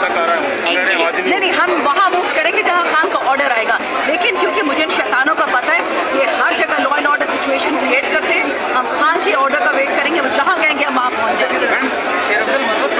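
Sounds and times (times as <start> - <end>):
crowd talking: 0.0 - 12.9.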